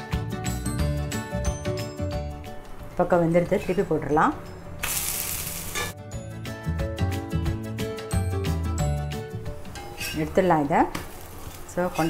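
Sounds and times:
food sizzling on a hot griddle: 0:04.8 - 0:06.0, 0:09.7 - 0:12.0
background music with low beat: 0:05.8 - 0:09.8.

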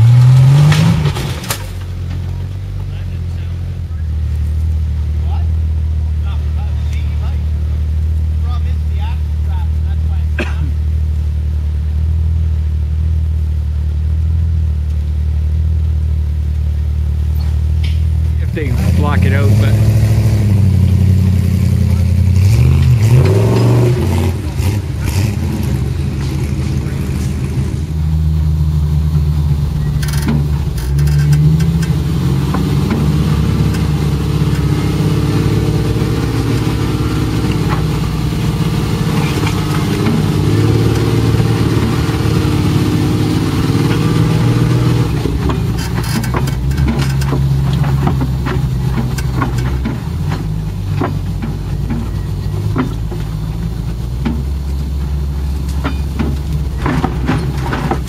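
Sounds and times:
engine drone inside vehicle cab: 0:00.0 - 0:58.0
off-road vehicle engine revving: 0:00.0 - 0:58.0.

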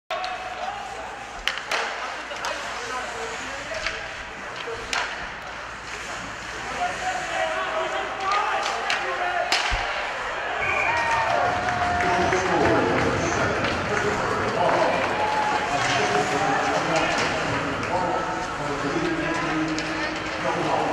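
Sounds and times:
hockey sticks and puck clacking: 0:00.1 - 0:20.9
crowd shouting and cheering: 0:06.9 - 0:19.0.

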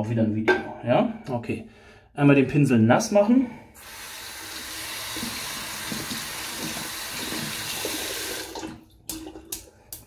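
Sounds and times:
tap running into sink: 0:05.1 - 0:09.6.

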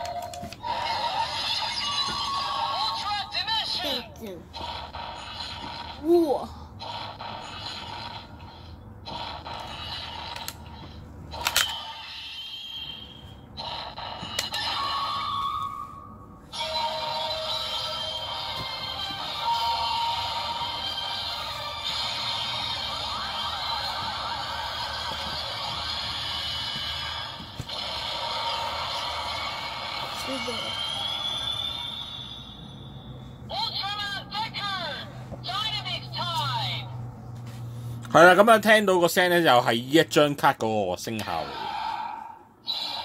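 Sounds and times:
toy clicks: 0:00.0 - 0:00.6, 0:09.5 - 0:12.5
music from toy speaker: 0:16.6 - 0:27.5.

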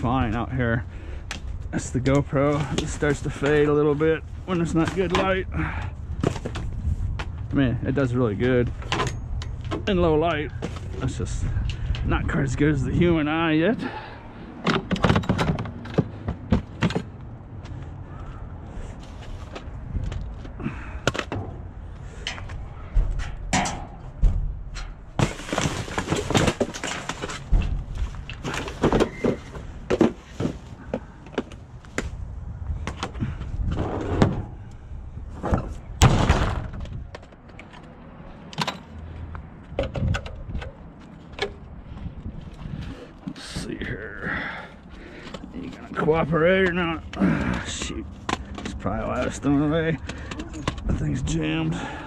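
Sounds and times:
rustling: 0:22.0 - 0:30.9
objects knocking against metal dumpster: 0:23.0 - 0:27.9.

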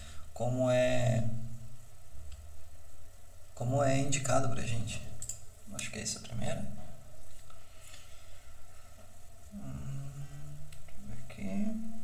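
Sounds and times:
man humming: 0:09.5 - 0:12.0.

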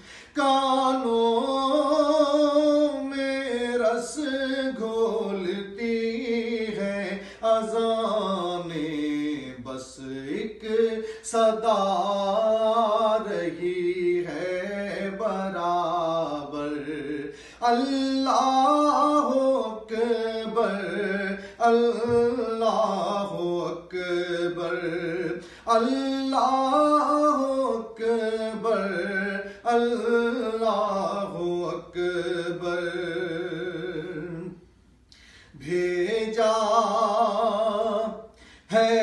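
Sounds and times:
singer breathing: 0:00.0 - 0:00.4, 0:07.2 - 0:07.4, 0:11.0 - 0:11.3, 0:17.3 - 0:17.6, 0:21.4 - 0:21.6, 0:25.4 - 0:25.7, 0:29.4 - 0:29.7, 0:34.7 - 0:35.6, 0:38.3 - 0:38.7
man singing devotional song: 0:00.0 - 0:39.0.

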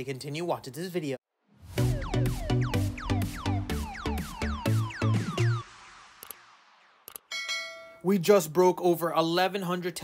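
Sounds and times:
electronic intro jingle: 0:01.5 - 0:08.0
bright bell-like chime: 0:07.3 - 0:08.1.

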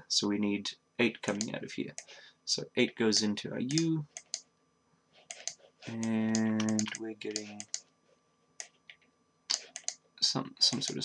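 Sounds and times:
computer mouse clicks: 0:03.7 - 0:04.4, 0:05.3 - 0:07.8, 0:08.6 - 0:10.0, 0:10.7 - 0:11.0.

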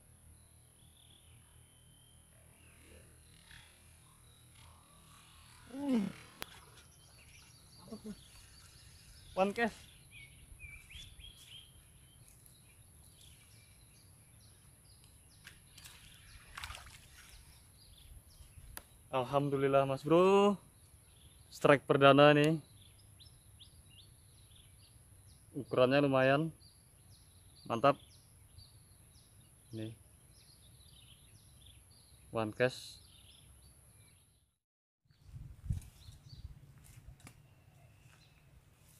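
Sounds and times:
faint bird chirps: 0:00.0 - 0:19.4, 0:37.4 - 0:38.5.

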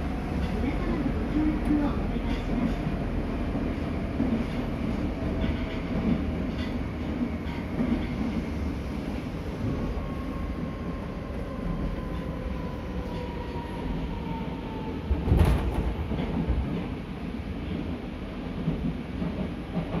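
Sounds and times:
train rumbling: 0:00.0 - 0:20.0.

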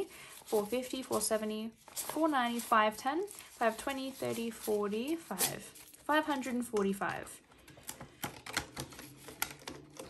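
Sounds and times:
banknotes rustling: 0:00.0 - 0:10.0
plastic binder pages clicking: 0:06.6 - 0:10.0.

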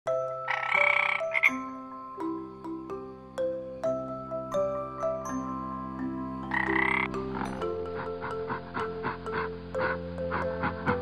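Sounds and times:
soft music with chiming notes: 0:00.1 - 0:11.0
frog croaking: 0:00.4 - 0:01.8, 0:06.4 - 0:11.0.

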